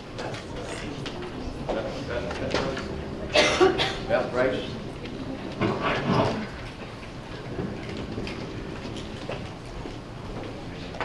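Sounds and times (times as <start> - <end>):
low murmur of voices: 0.0 - 11.0
person coughing: 3.3 - 4.1.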